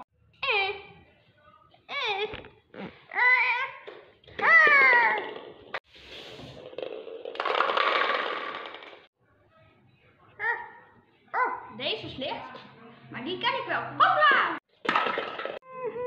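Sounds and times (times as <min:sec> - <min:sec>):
toy bowling pins clattering on wood: 0:06.6 - 0:09.1.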